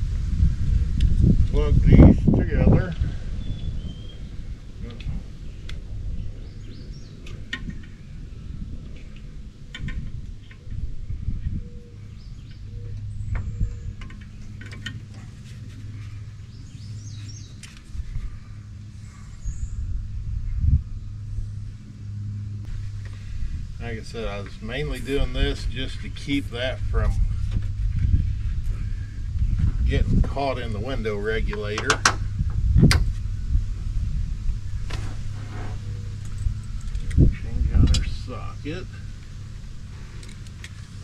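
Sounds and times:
low steady hum: 0:00.0 - 0:41.0
hands rustling wires: 0:13.9 - 0:19.2.

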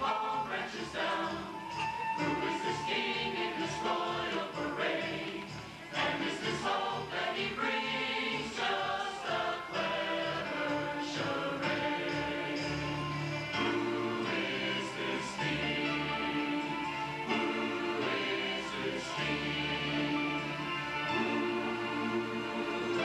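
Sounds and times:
choir singing: 0:00.0 - 0:23.0.

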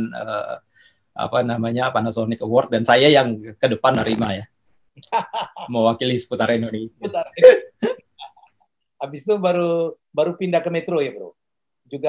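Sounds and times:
man laughing: 0:05.0 - 0:06.0, 0:07.0 - 0:08.5.

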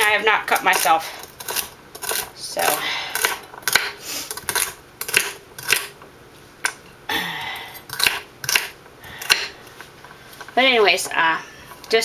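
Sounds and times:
knife chopping on wooden board: 0:03.2 - 0:05.9, 0:07.9 - 0:09.5.

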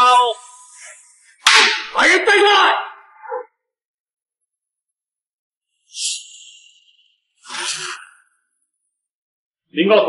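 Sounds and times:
man speaking: 0:01.9 - 0:03.0.

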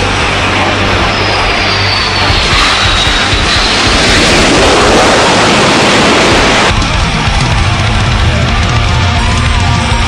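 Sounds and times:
hard rock music: 0:00.0 - 0:10.0
jet engine whine: 0:00.0 - 0:10.0.

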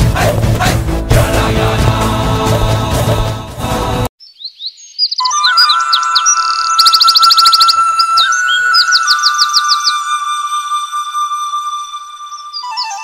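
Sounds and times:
birds chirping and trilling: 0:04.2 - 0:13.0.

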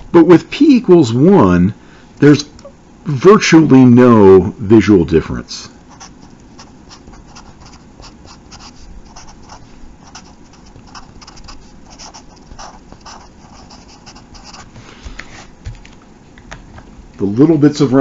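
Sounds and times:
marker writing on paper: 0:05.9 - 0:15.3.

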